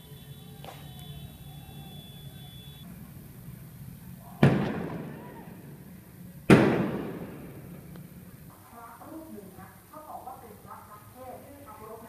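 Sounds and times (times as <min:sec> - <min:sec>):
loud firework bangs: 0:00.0 - 0:08.5.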